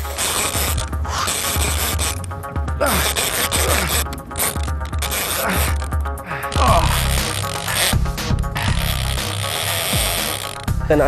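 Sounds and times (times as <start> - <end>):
fishing reel drag ratcheting: 0.0 - 10.8
background music with low beat: 0.0 - 11.0.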